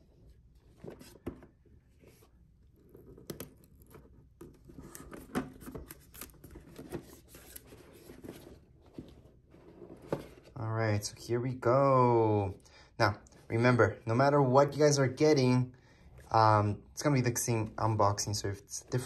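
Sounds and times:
faint rustling and scraping: 0.0s - 10.6s
cardboard box being opened: 2.1s - 10.6s.

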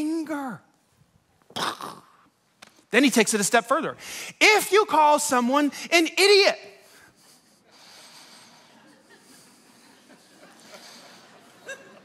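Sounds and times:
faint human breathing: 6.9s - 11.6s.

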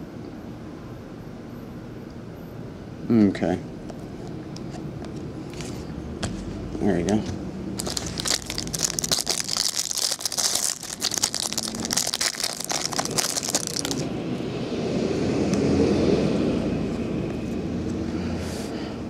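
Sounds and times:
plastic wrapper crinkling: 7.8s - 14.1s.

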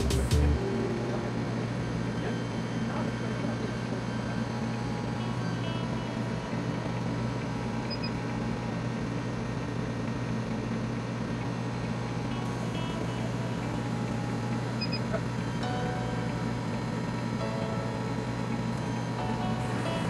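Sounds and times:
laser cutting machine hum: 0.0s - 20.0s.

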